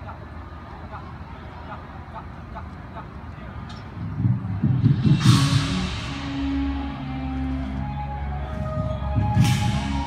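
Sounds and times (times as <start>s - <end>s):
marching band playing: 4.7s - 10.0s
cymbal crash: 5.0s - 7.2s.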